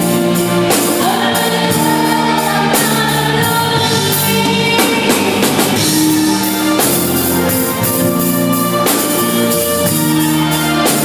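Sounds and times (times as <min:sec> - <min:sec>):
rock band with drums and guitar: 0:00.0 - 0:11.0
woman singing into microphone: 0:00.7 - 0:05.7.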